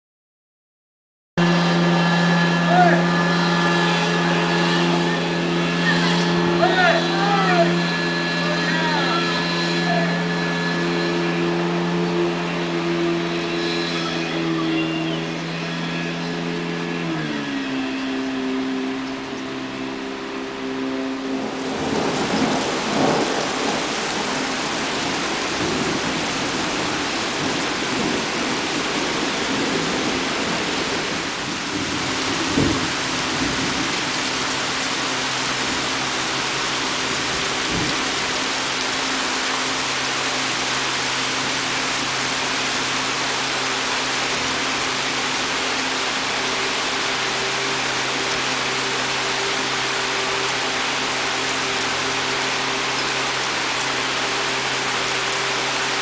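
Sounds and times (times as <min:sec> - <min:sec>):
heavy rain pouring: 0:01.4 - 0:56.0.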